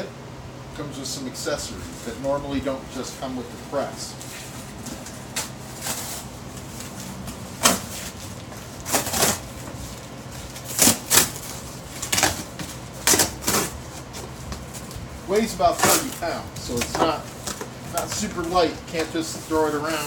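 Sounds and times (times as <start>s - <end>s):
foam package rubbing: 3.8s - 20.0s
cardboard box tearing: 8.8s - 9.6s, 10.4s - 14.3s, 15.7s - 18.5s.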